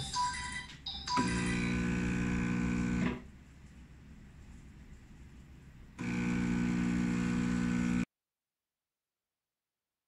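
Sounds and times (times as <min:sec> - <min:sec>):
espresso machine pump buzzing: 0:01.2 - 0:03.2, 0:06.0 - 0:08.1.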